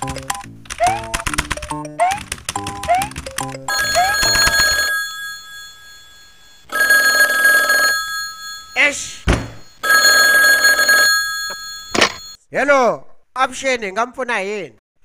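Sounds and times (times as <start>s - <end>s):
desk telephone ringing: 3.7s - 12.4s
thump: 9.3s - 9.6s.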